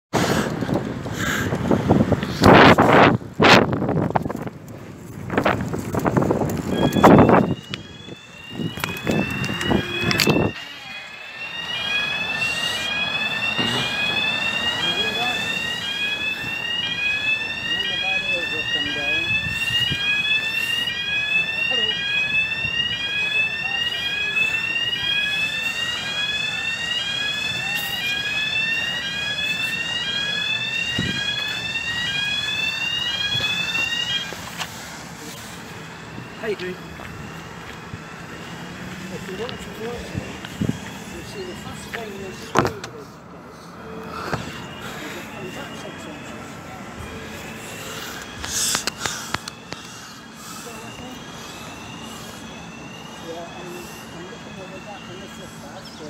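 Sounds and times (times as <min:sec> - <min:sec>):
barrier warning alarm rising tone: 0:05.3 - 0:56.0.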